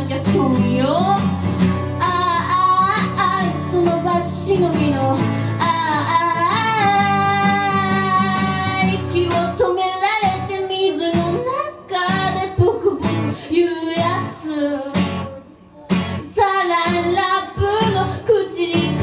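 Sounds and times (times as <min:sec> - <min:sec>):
strummed acoustic guitar: 0:00.0 - 0:19.0
person singing: 0:02.0 - 0:19.0.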